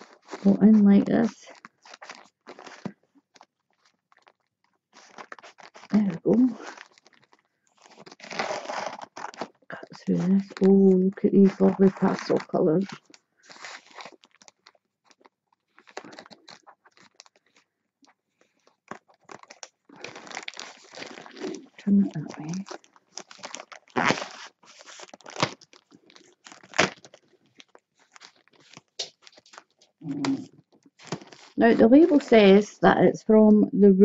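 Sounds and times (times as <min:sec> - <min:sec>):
plastic bag crinkling: 0:00.0 - 0:32.9
scissors cutting plastic: 0:05.0 - 0:14.5, 0:18.8 - 0:32.2.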